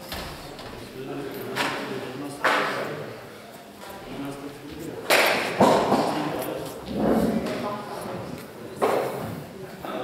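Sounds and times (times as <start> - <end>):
voices echoing in a hall: 0.0 - 10.0.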